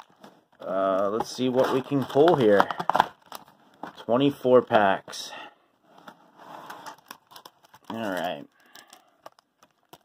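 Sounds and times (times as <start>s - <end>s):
foil packs rustling: 0.0s - 4.0s, 6.6s - 10.0s.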